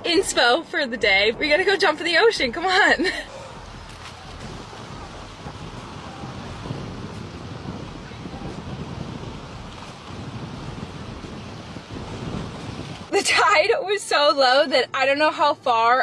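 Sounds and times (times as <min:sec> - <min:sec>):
wind rumbling on microphone: 0:00.0 - 0:15.8
calm sea water washing: 0:03.1 - 0:13.6.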